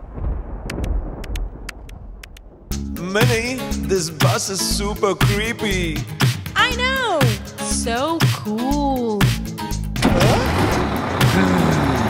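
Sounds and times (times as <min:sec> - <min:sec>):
background music: 0:02.7 - 0:12.0
cartoon bus engine rumble: 0:09.6 - 0:12.0.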